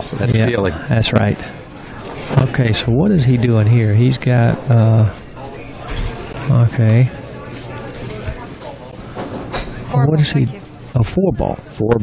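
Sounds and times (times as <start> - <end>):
faint speech: 4.5 - 12.0.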